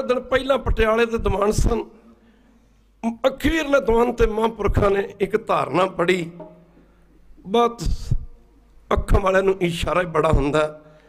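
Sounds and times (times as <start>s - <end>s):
man speaking into a microphone: 0.0s - 2.1s, 3.0s - 6.5s, 7.3s - 11.0s.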